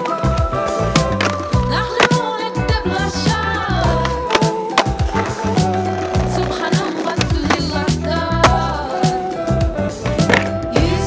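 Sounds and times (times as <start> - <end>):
skateboard wheels rolling on concrete: 0.0 - 11.0
music with bass line: 0.1 - 11.0
skateboard clacks: 0.9 - 2.4, 3.9 - 8.6, 10.1 - 10.7.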